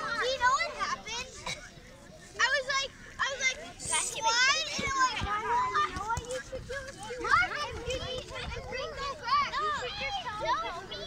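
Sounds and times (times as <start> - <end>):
children shouting: 0.0 - 1.1, 2.4 - 11.0.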